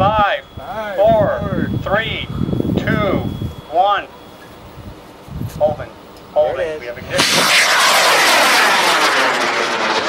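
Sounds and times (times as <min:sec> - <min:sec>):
rocket motor rushing roar: 0:07.1 - 0:10.0.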